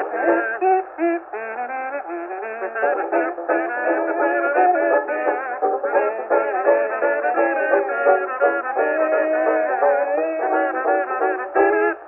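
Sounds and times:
banjo: 0.0s - 12.0s
kazoos buzzing a melody: 0.0s - 12.0s.

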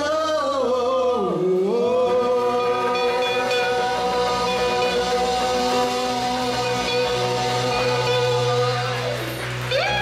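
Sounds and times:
live rock band playing: 1.8s - 10.0s.

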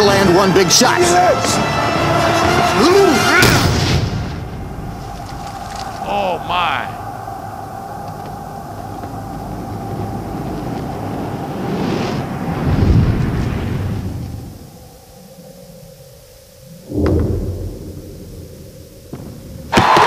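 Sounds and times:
low rumbling swell: 4.3s - 19.7s.

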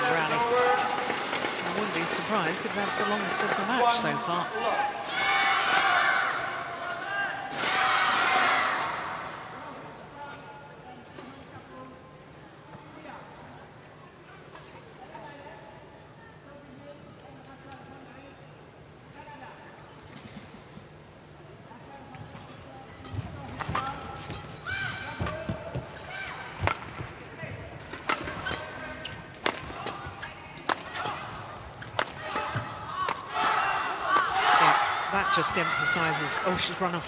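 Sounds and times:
shuttlecock struck by racket: 29.4s - 30.0s.

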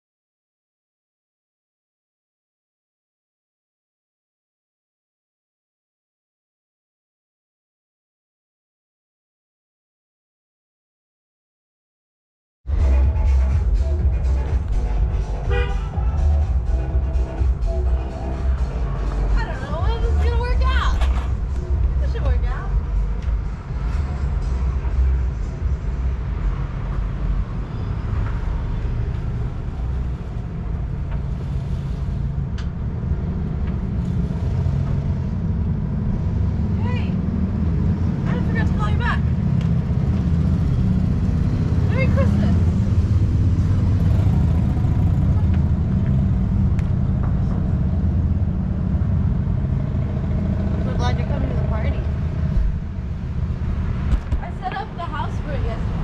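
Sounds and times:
road traffic rumble: 12.7s - 56.0s.

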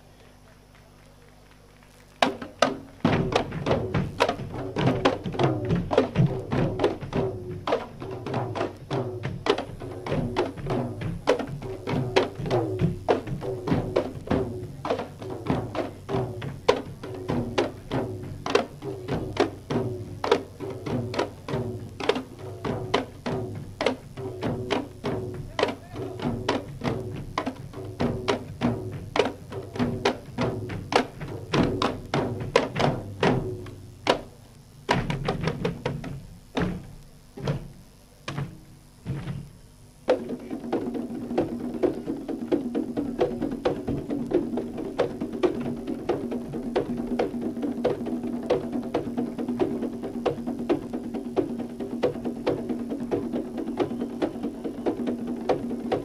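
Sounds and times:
barrel drums beaten fast: 2.2s - 56.0s.

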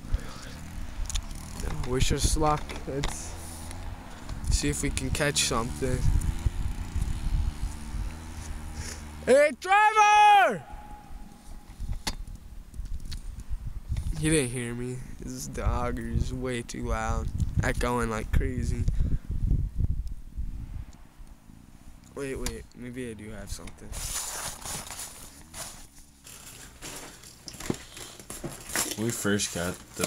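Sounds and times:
low steady rumble: 0.0s - 9.4s, 10.6s - 23.6s
wind buffeting microphone: 0.1s - 8.7s, 10.7s - 14.4s, 15.0s - 21.1s
man speaking: 9.2s - 10.7s.

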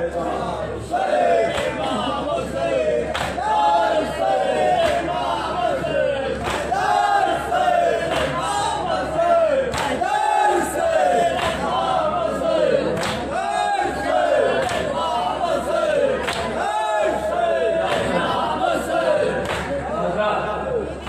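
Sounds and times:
men chanting in unison: 0.0s - 20.7s.

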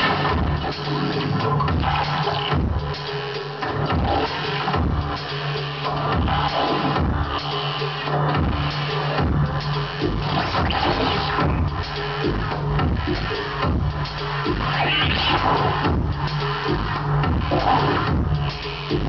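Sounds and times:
low electronic beats: 0.0s - 19.0s.

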